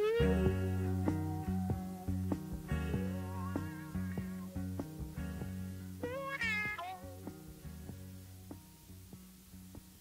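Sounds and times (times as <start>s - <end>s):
sliding guitar note: 0.0s - 8.7s
bass: 0.0s - 10.0s
plucked guitar notes: 0.0s - 10.0s.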